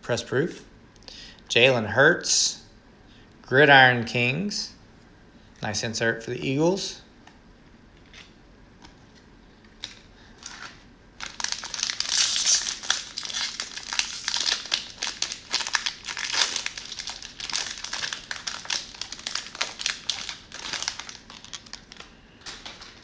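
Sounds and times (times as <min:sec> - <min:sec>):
plastic wrapper tearing and crinkling: 0:09.8 - 0:23.0.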